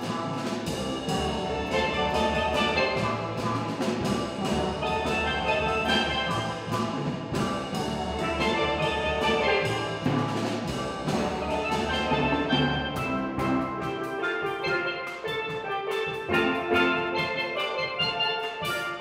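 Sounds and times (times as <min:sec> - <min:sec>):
steel drum band playing: 0:00.0 - 0:19.0.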